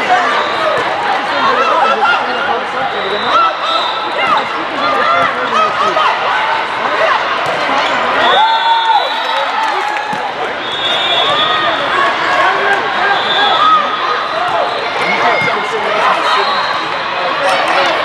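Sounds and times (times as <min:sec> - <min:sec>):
crowd voices: 0:00.0 - 0:18.0
players shouting: 0:00.0 - 0:18.0.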